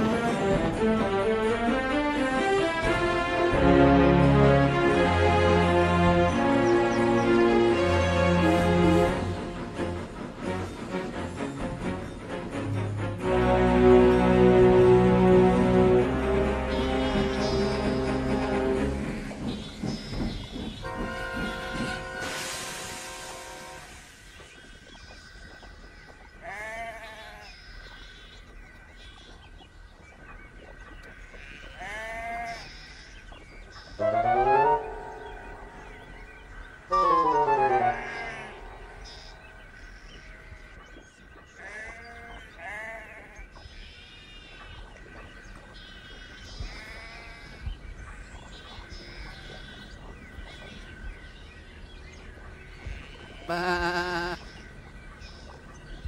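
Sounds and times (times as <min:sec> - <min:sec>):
sheep bleating: 0:26.4 - 0:27.4, 0:31.4 - 0:32.6, 0:37.9 - 0:38.9, 0:41.6 - 0:43.4, 0:46.7 - 0:47.6, 0:53.0 - 0:54.4.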